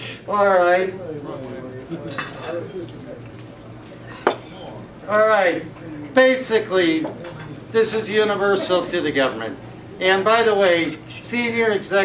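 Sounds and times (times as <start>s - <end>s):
low murmuring voices: 0.0s - 11.8s.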